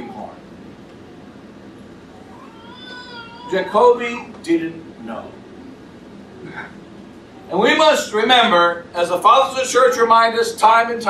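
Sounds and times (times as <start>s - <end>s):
room hum: 0.0s - 11.0s
high-pitched vocal cry: 2.2s - 3.6s.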